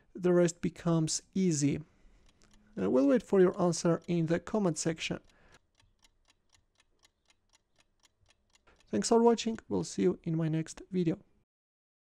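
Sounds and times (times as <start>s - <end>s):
clock ticking: 0.5s - 10.9s.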